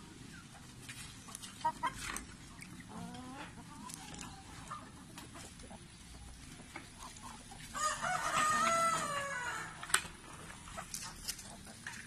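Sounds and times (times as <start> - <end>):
chickens pecking and clucking: 0.0 - 12.0
rooster crowing: 7.8 - 9.8.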